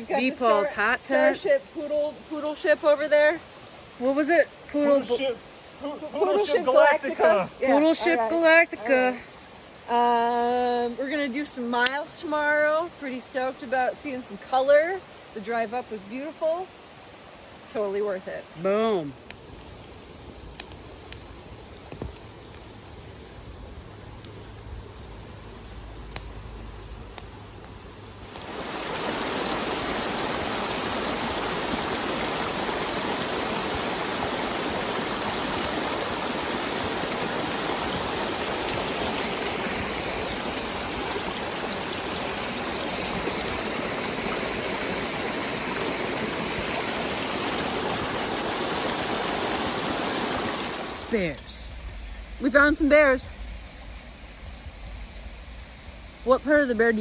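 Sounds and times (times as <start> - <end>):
creek rushing over cascades: 0.0 - 54.2
campfire crackling: 0.0 - 57.0
fire pops: 19.2 - 23.2, 24.1 - 29.8.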